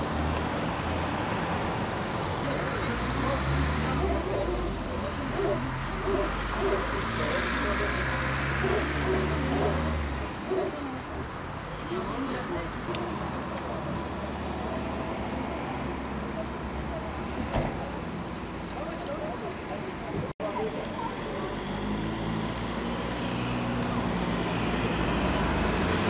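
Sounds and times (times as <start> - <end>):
road traffic: 0.0 - 26.0
people talking: 2.4 - 18.1, 18.7 - 22.0.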